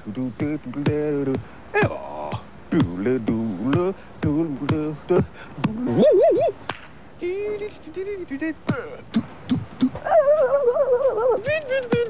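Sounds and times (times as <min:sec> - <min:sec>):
man vocalizing a cappella: 0:00.0 - 0:06.6, 0:07.2 - 0:12.0.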